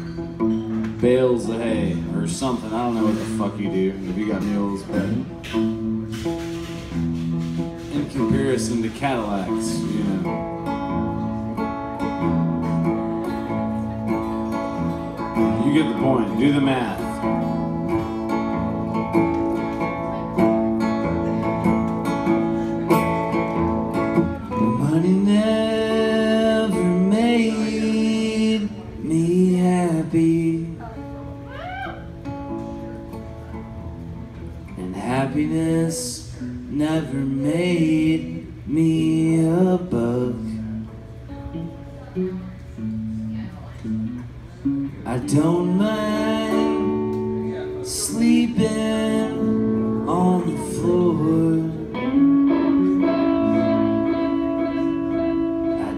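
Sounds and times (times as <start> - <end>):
acoustic guitars strumming: 0.0 - 55.9.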